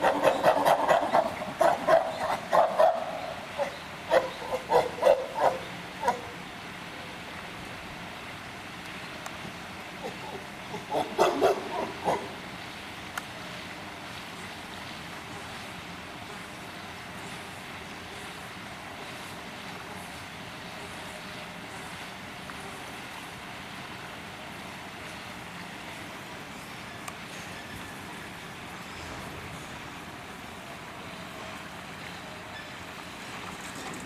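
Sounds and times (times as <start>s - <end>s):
outdoor background noise: 0.0s - 34.0s.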